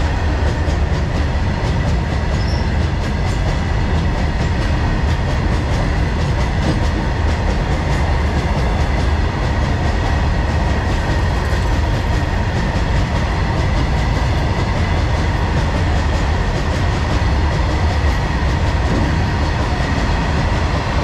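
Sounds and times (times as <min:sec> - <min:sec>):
train wheels rumbling on rails: 0:00.0 - 0:21.0.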